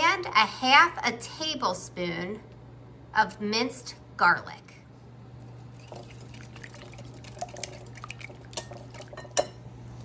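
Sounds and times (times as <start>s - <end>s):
whisk tapping glass bowl: 5.8s - 9.6s.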